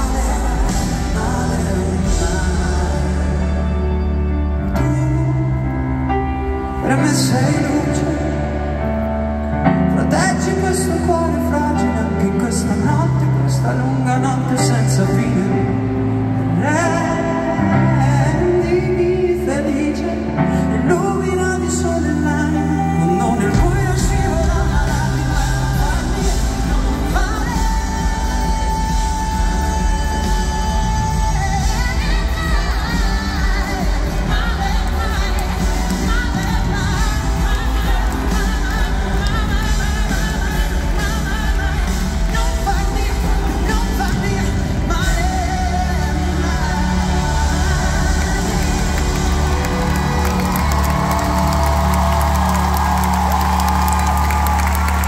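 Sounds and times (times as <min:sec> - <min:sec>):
live pop band with heavy bass: 0:00.0 - 0:55.0
crowd cheering and clapping: 0:23.4 - 0:45.3, 0:46.2 - 0:55.0.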